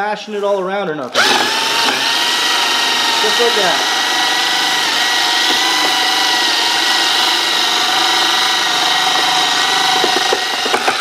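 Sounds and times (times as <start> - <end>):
electric drill whining: 1.1 - 11.0
paper pulp churning in bucket: 1.2 - 11.0.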